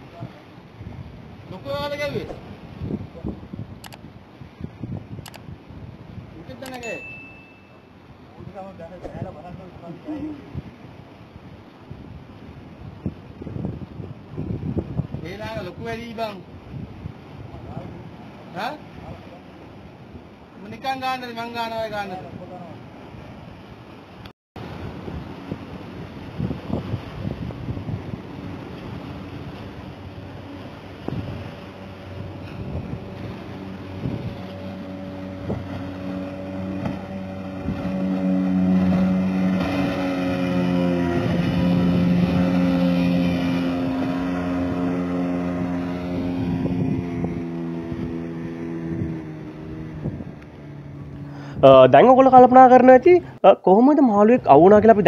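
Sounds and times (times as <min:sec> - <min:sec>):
outboard motor humming: 0:00.0 - 0:53.4.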